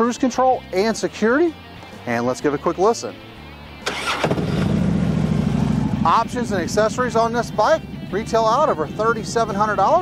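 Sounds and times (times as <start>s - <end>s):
motorcycle engine starting: 3.8s - 10.0s.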